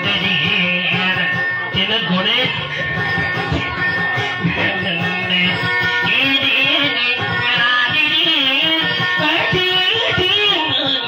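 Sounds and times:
man singing: 0.0s - 3.5s, 4.2s - 11.0s
acoustic guitar: 0.0s - 11.0s.

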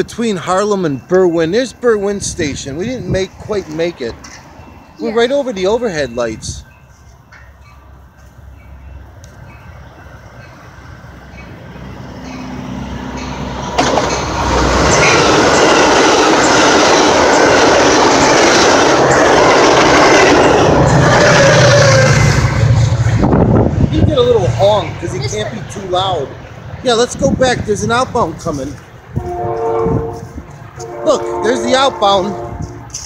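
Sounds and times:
train passing at speed: 0.0s - 33.0s.

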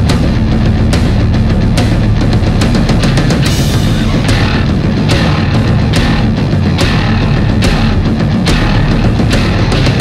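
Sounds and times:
drum kit: 0.0s - 10.0s
heavy metal guitars and bass: 0.0s - 10.0s
cymbal crash: 3.4s - 8.0s.

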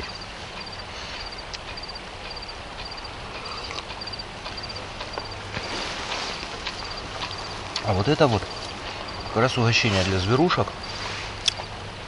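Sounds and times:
faint clicks: 0.0s - 9.3s, 11.4s - 11.8s
crickets chirping: 0.0s - 12.0s.

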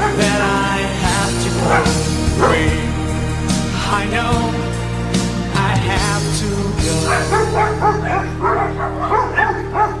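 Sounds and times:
music with held notes: 0.0s - 10.0s
dog yipping: 7.1s - 10.0s.

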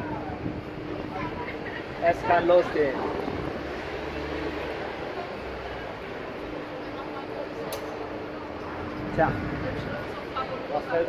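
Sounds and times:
murmur of a busy crowd: 0.0s - 11.0s.

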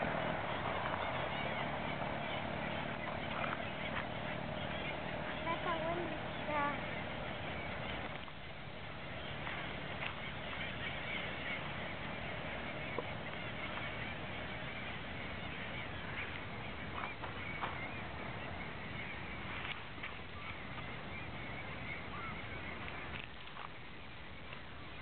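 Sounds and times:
seabirds calling: 0.0s - 25.0s.

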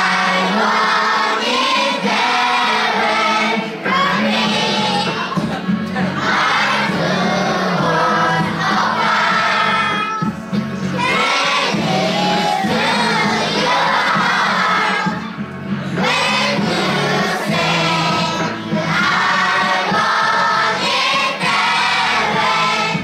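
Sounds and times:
backing track with bass line: 0.0s - 23.0s
children singing in unison: 0.0s - 23.0s.

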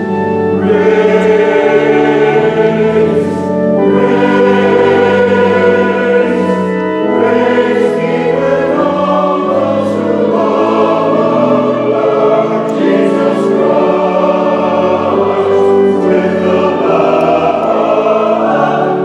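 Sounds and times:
mixed choir singing in harmony: 0.0s - 19.0s.

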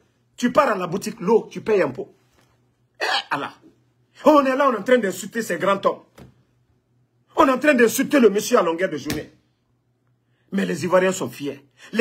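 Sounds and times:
man coughing: 3.0s - 3.7s.

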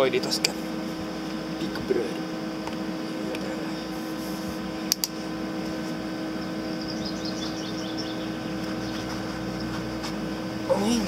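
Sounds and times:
welding machine humming: 0.0s - 11.0s.

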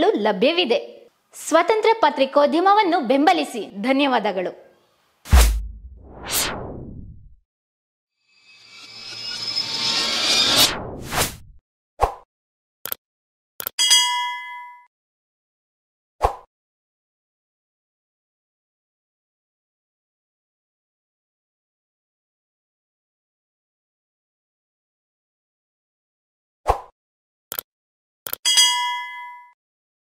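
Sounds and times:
bright bell ding: 13.8s - 14.9s, 28.5s - 29.6s.

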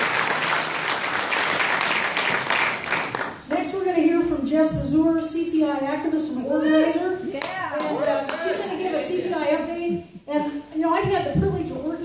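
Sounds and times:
audience clapping: 0.0s - 3.6s, 7.4s - 8.8s
people's voices: 3.5s - 12.0s.

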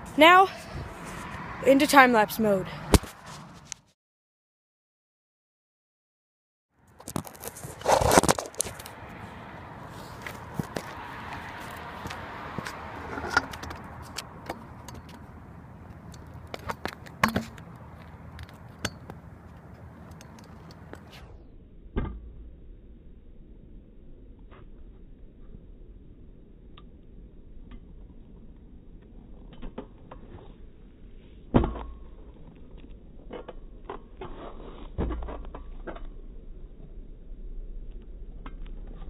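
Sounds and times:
scooter wheels rolling on asphalt: 0.0s - 3.8s, 6.8s - 21.2s
scooter deck clacking: 12.1s - 15.3s, 16.0s - 17.7s.

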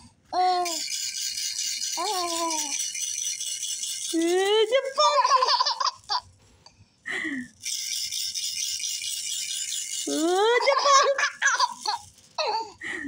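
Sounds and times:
toy rattle shaking: 0.4s - 6.4s, 7.1s - 13.0s.

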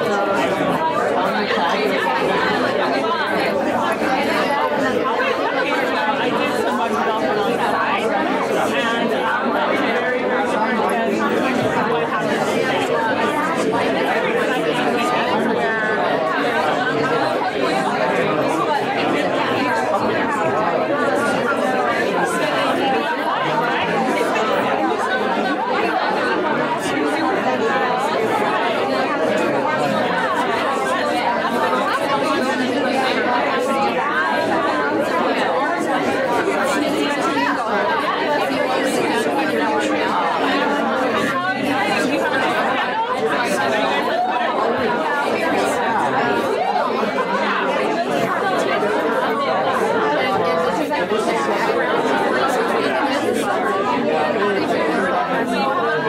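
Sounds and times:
hubbub of overlapping conversations: 0.0s - 56.0s.

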